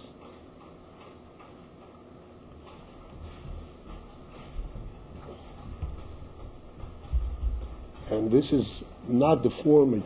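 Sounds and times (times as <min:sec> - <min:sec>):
dull bumps: 0:02.6 - 0:08.5.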